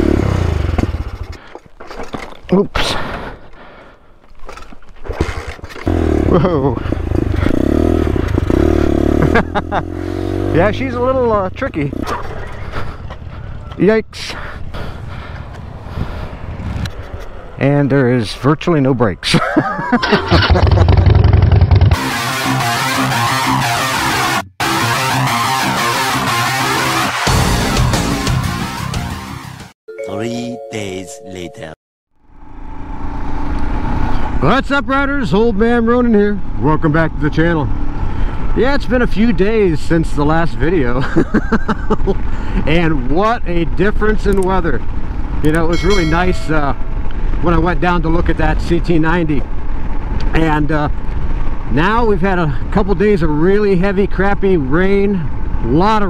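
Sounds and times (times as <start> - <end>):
motorcycle engine starting: 0.0 - 1.6, 5.1 - 13.5, 20.0 - 22.1, 32.2 - 34.5
road noise: 0.0 - 24.4, 32.1 - 56.0
wind noise: 14.6 - 17.6.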